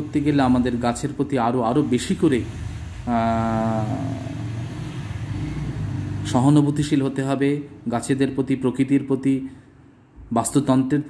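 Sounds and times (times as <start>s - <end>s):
low background hum: 0.0s - 11.0s
person saying aah: 3.1s - 4.5s.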